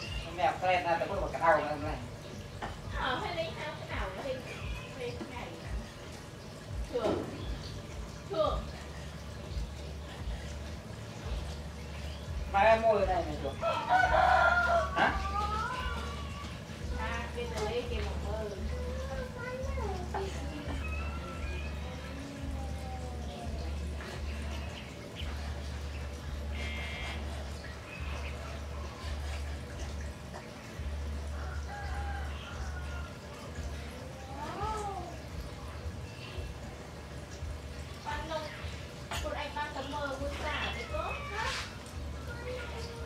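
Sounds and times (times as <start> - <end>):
rooster crowing: 13.6 - 16.2, 31.3 - 33.5.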